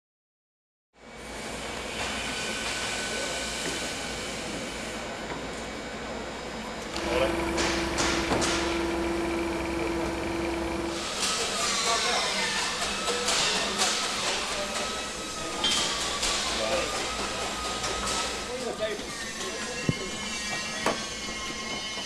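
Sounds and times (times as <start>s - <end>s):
clatter and hiss of parts: 1.2s - 5.8s, 6.9s - 8.9s, 10.9s - 22.0s
forklift motor humming: 6.9s - 11.0s.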